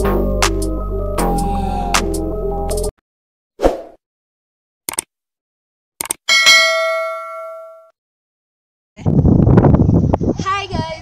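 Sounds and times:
short clicks: 4.9s - 5.1s, 6.0s - 6.2s
notification bell ding: 6.3s - 7.9s.

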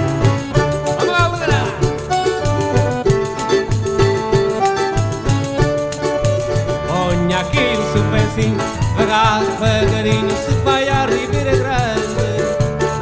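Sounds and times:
accordion: 0.0s - 13.0s
cavaquinho: 0.0s - 13.0s
drums and percussion: 0.0s - 13.0s
electric keyboard: 0.0s - 13.0s.

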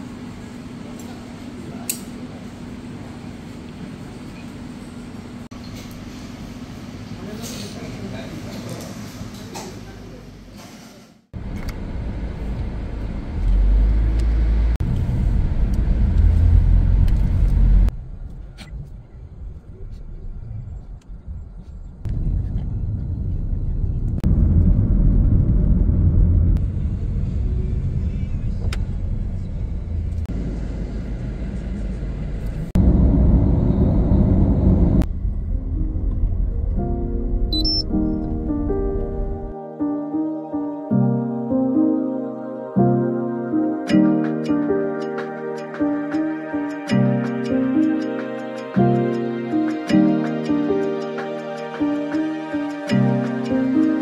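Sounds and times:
low rumbling road vehicles: 11.4s - 39.5s
music: 35.2s - 54.0s.

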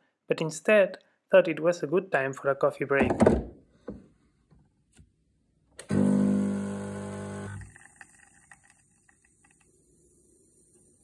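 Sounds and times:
espresso machine pump humming: 5.8s - 8.0s.

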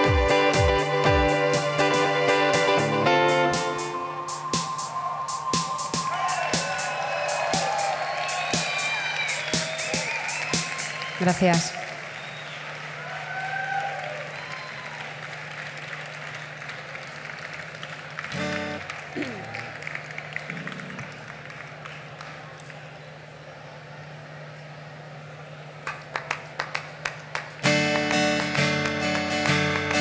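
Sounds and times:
guitar chord: 0.0s - 4.4s
picked guitar notes: 0.0s - 6.0s
crowd applauding and calling out: 0.0s - 30.0s
stage hum: 0.0s - 30.0s.

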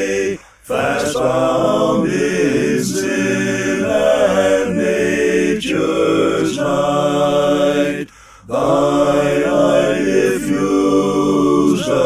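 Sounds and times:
men singing a cappella hymn: 0.0s - 12.0s.

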